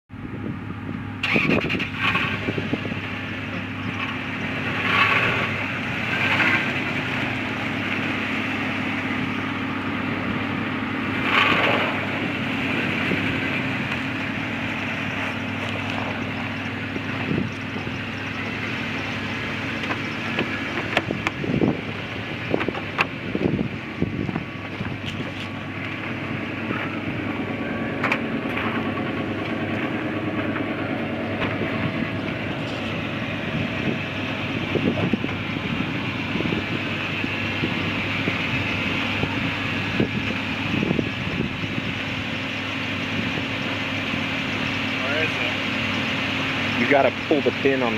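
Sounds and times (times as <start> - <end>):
car engine idling: 0.1 - 47.9.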